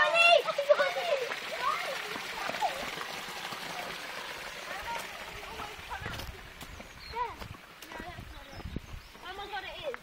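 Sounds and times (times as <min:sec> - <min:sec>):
child's high wordless calls: 0:04.6 - 0:07.4
footsteps on tarmac: 0:05.0 - 0:10.0.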